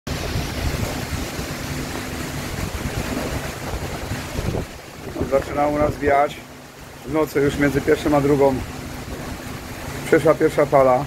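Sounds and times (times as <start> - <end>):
wind buffeting microphone: 0.1 - 10.8
storm wind rushing through trees: 0.1 - 11.0.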